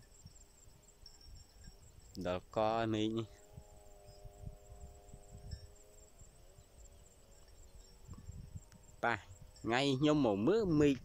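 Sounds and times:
faint droning hum: 0.0 - 10.6
high insect trill: 0.0 - 11.0.

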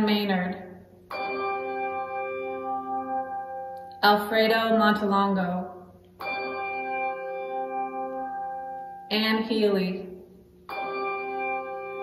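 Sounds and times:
bell ringing: 1.1 - 4.8, 6.2 - 12.0.

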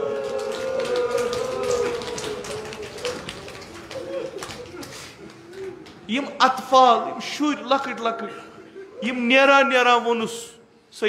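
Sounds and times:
long wailing voice: 0.0 - 4.8
people weeping aloud: 0.0 - 6.0.

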